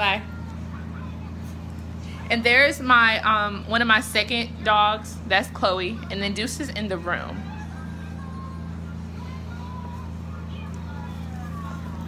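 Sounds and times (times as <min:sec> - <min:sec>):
steady low machinery hum: 0:00.0 - 0:12.0.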